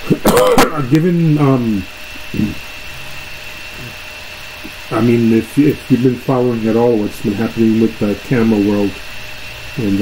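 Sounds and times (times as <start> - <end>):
background hum and hiss: 0.0 - 10.0
high-pitched whine: 0.0 - 10.0.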